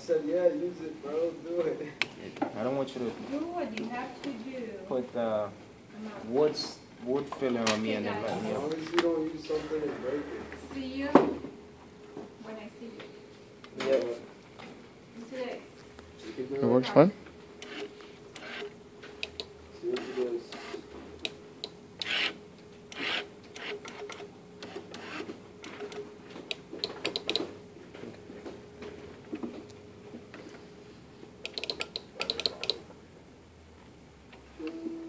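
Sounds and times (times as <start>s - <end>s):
small electric motor hum: 17.6s - 18.8s, 22.0s - 26.0s
mechanism clicks and knocks: 25.7s - 27.5s, 31.4s - 32.8s.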